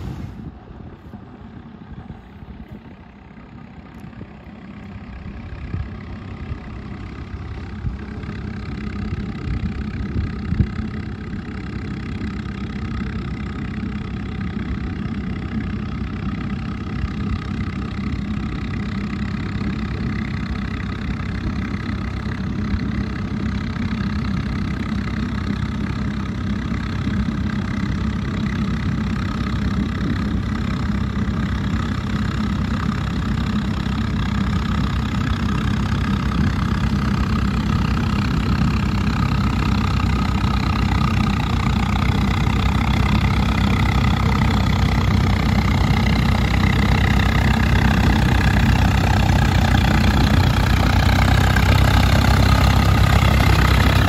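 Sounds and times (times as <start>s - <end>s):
tractor diesel engine running: 0.0s - 54.0s.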